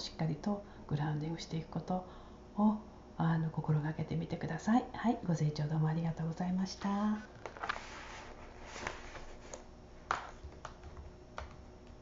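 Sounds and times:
faint room noise: 0:00.0 - 0:12.0.

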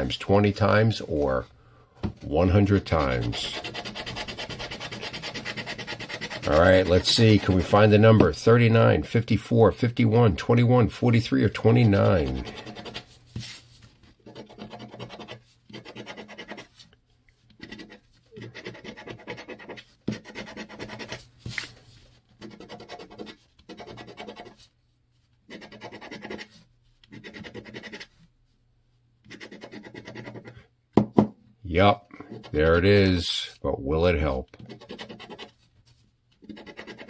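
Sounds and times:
scratch ticket being scratched: 0:02.4 - 0:08.0, 0:11.1 - 0:13.1, 0:14.2 - 0:16.7, 0:17.6 - 0:21.3, 0:22.4 - 0:24.6, 0:25.5 - 0:26.5, 0:27.1 - 0:28.1, 0:29.3 - 0:30.6, 0:34.2 - 0:35.6, 0:36.4 - 0:37.0.

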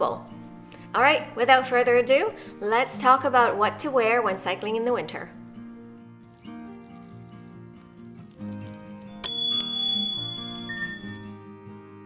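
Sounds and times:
background music: 0:00.0 - 0:12.0
bicycle bell ringing: 0:09.2 - 0:11.2.

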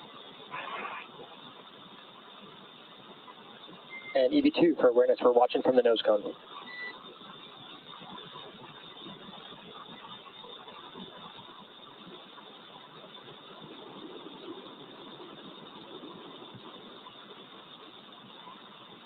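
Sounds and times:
radio hiss: 0:00.0 - 0:19.0.

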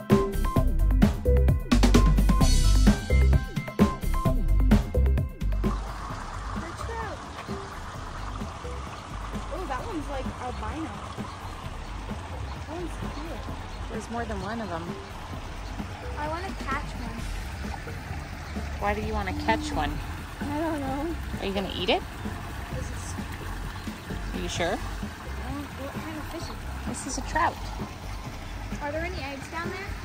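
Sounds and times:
music with drums: 0:00.0 - 0:30.0
water rushing through channel: 0:05.4 - 0:30.0.

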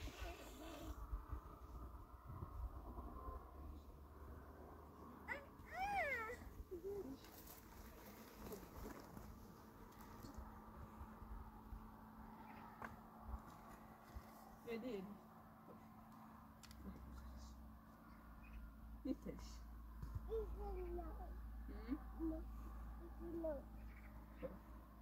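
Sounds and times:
toddler's high-pitched call: 0:05.3 - 0:06.4.

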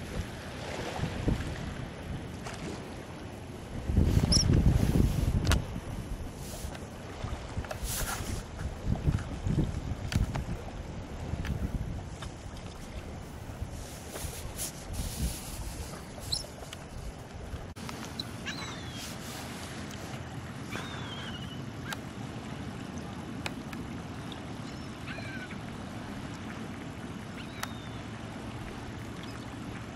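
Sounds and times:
wind buffeting microphone: 0:00.0 - 0:02.7, 0:03.5 - 0:17.8.

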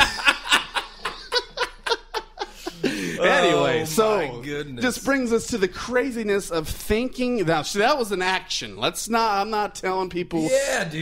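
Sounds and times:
men laughing: 0:00.0 - 0:03.9.

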